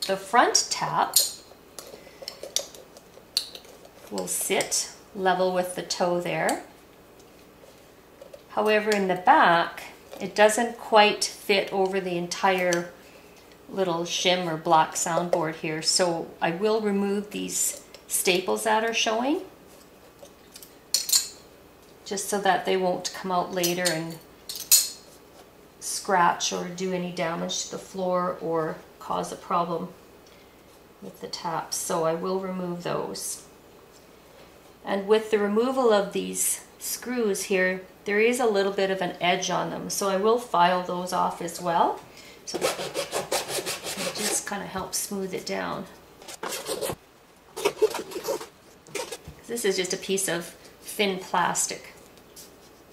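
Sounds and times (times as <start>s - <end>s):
file rasping on plastic: 42.5s - 44.4s.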